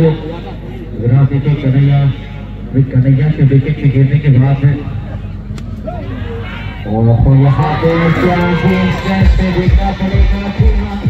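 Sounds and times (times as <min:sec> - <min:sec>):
man commentating loudly: 0:06.8 - 0:11.0.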